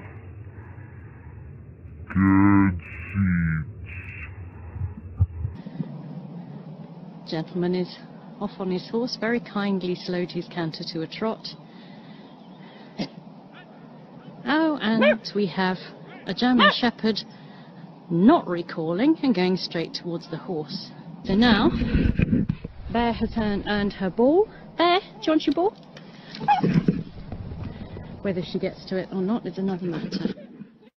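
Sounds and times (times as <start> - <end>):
low rumbling noise: 0.0 - 10.2, 21.0 - 24.9
dog yelp: 15.0 - 15.2, 16.1 - 16.8
dog whining: 15.0 - 15.3, 26.4 - 26.7.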